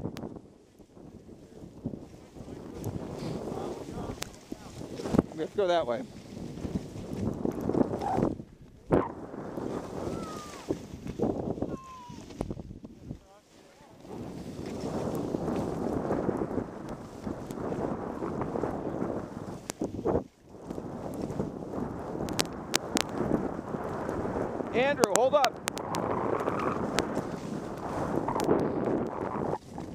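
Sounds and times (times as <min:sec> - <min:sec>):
wind rushing over microphone: 0:00.0 - 0:29.9
skis hissing over snow: 0:02.1 - 0:06.8, 0:09.6 - 0:11.2, 0:13.6 - 0:16.4, 0:26.4 - 0:28.6.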